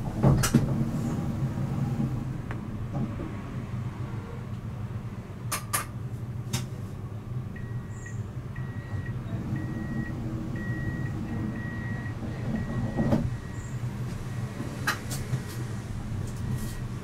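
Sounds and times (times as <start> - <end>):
tram rumbling: 0.0 - 17.0
high electronic beep: 7.6 - 13.7.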